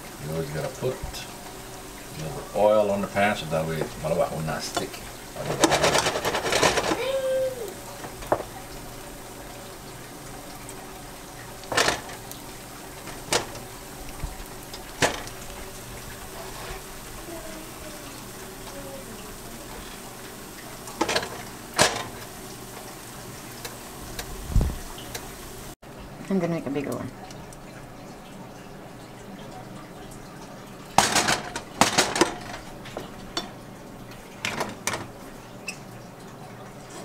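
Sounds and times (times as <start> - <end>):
crepe sizzling in frying pan: 0.0 - 25.8
utensils knocking cookware: 4.7 - 7.0, 21.0 - 22.2, 31.0 - 33.5
busy clatter: 4.8 - 7.0, 31.0 - 33.1.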